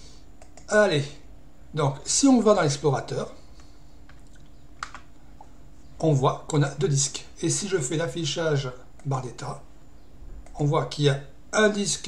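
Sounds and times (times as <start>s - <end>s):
faint low hum: 0.0s - 12.0s
computer clicks: 0.4s - 0.7s, 3.6s - 5.1s.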